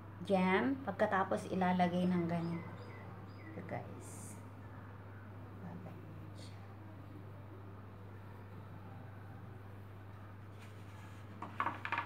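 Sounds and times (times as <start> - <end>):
steady low hum: 0.0 - 11.4.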